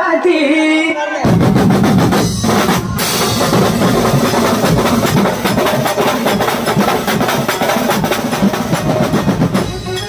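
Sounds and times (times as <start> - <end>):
drum ensemble playing fast rhythm: 1.2 - 10.0
cymbals: 1.4 - 10.0.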